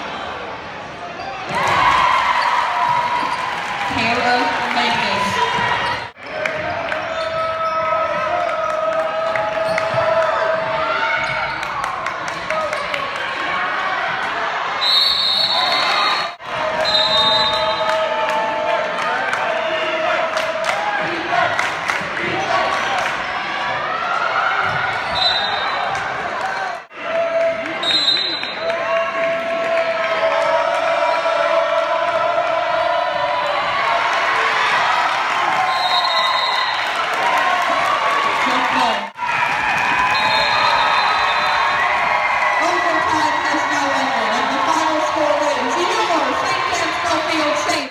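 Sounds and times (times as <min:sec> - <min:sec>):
voices and shouts: 0:01.4 - 0:47.9.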